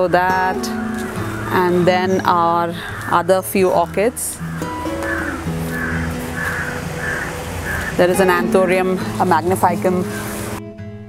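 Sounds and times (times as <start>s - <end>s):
soft background music: 0.0s - 11.0s
crow cawing: 1.0s - 1.8s, 2.7s - 3.4s, 4.4s - 8.1s.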